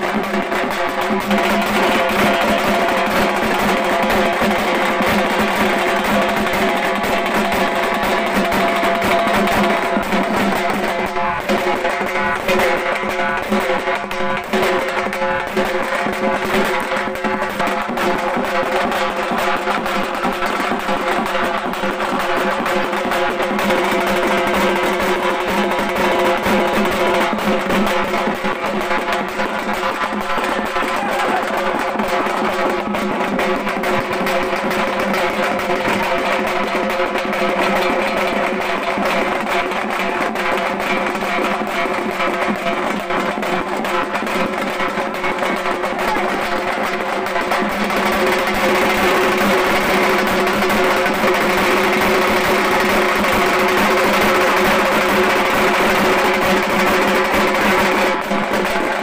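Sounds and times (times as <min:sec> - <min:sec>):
frame drums beaten fast: 0:00.0 - 0:59.0.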